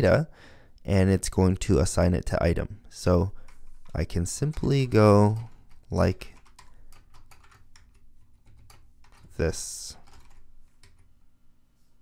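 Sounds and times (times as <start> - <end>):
typing on computer keyboard: 3.4 - 11.1.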